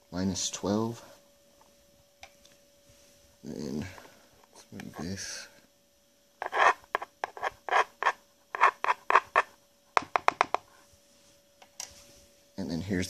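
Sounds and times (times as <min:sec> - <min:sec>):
coin scraping plastic pan: 0:06.4 - 0:09.5.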